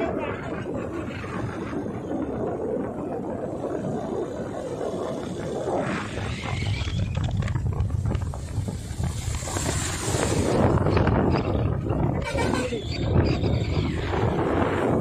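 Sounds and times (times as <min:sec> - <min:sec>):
wind buffeting microphone: 0:00.0 - 0:15.0
tyres hissing on wet tarmac: 0:08.4 - 0:10.6.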